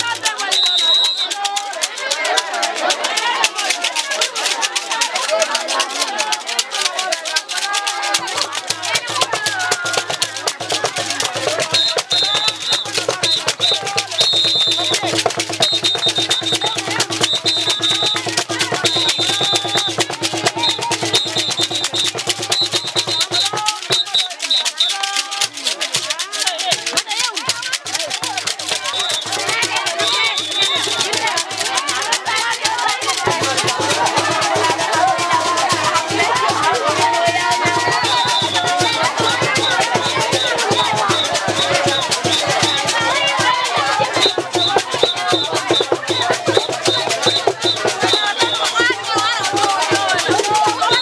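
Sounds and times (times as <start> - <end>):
hands clapping: 0.0 - 51.0
rattles shaken fast: 0.0 - 51.0
voices singing and calling: 0.0 - 51.0.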